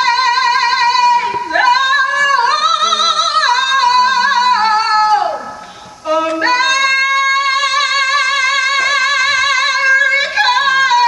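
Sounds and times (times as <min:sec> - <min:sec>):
woman singing into a microphone: 0:00.0 - 0:11.0.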